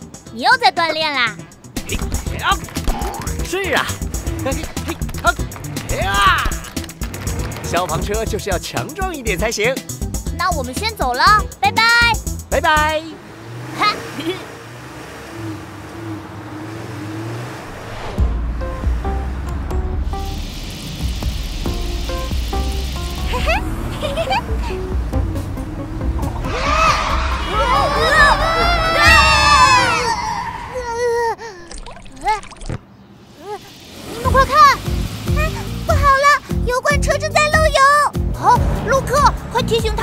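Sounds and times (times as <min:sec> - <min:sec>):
light background music: 0:00.0 - 0:13.3, 0:18.2 - 0:29.8, 0:34.2 - 0:40.0
deep vehicle rumble: 0:01.5 - 0:31.4, 0:33.0 - 0:40.0
hissing gush of liquid: 0:20.1 - 0:24.4, 0:33.2 - 0:36.6
cartoon character exclaiming: 0:26.5 - 0:31.3, 0:33.4 - 0:34.8.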